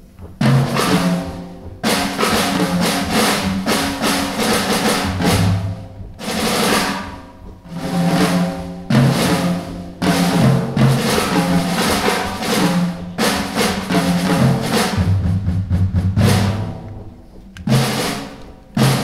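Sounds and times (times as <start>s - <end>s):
jazz drum kit playing: 0.0s - 19.0s.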